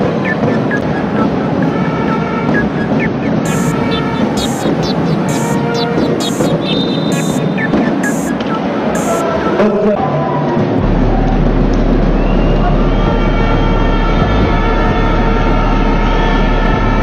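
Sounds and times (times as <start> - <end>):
sneakers squeaking on hardwood: 0.0 - 9.2
referee whistle: 0.0 - 9.7, 12.0 - 16.9
rhythmic beat from stands: 0.0 - 9.7
crowd noise: 0.0 - 17.0.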